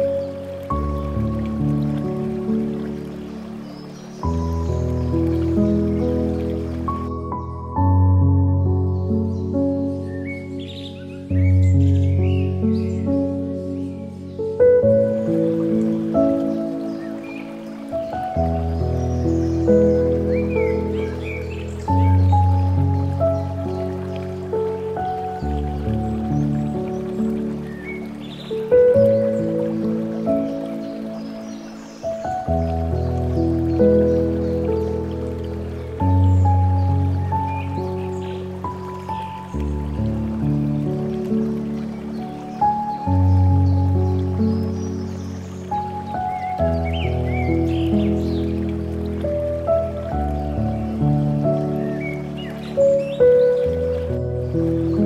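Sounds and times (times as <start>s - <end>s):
slow calm piano music: 0.0s - 55.0s.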